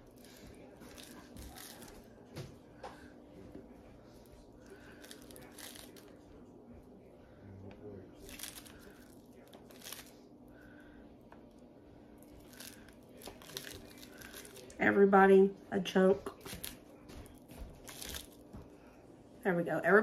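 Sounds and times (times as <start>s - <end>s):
paper wrapper crinkling: 0.1s - 2.1s, 4.7s - 6.2s, 8.2s - 10.2s, 12.2s - 14.8s, 16.3s - 18.4s.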